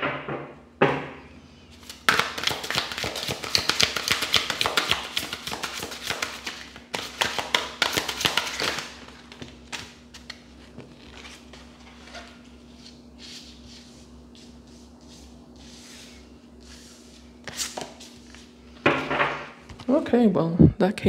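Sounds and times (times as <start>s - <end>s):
cards being shuffled: 1.8s - 12.0s, 12.7s - 18.5s.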